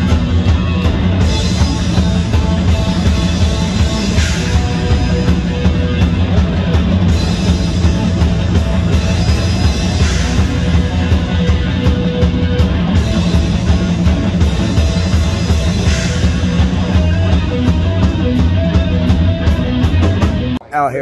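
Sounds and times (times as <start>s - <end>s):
distorted electric guitars: 0.0s - 20.7s
drum kit: 0.0s - 20.7s.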